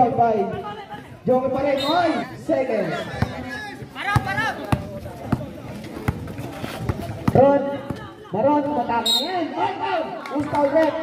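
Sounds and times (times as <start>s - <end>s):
crowd voices: 0.0s - 11.0s
basketball bouncing on concrete: 3.1s - 8.1s.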